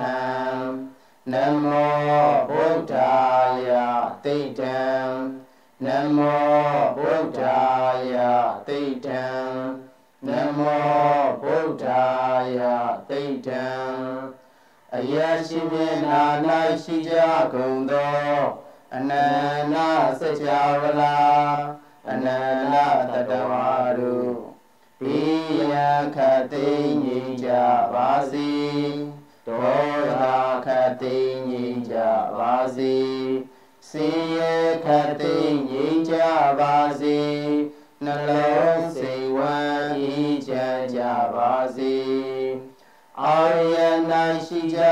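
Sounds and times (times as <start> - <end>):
person chanting devotional chant: 0.0 - 44.9.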